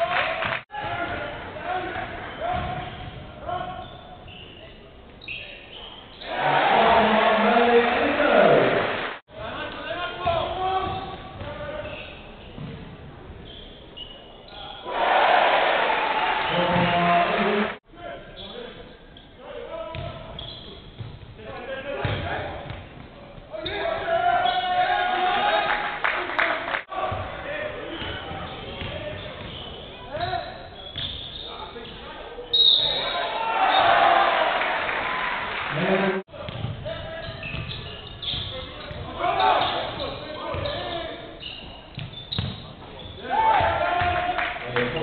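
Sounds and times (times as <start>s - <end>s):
voices in a hall: 0.0s - 45.0s.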